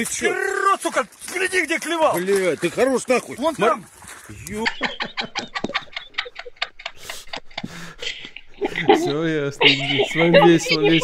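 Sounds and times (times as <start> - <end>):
person speaking: 0.0 - 6.4, 7.0 - 11.0
women laughing in breathy gasps: 5.1 - 10.3.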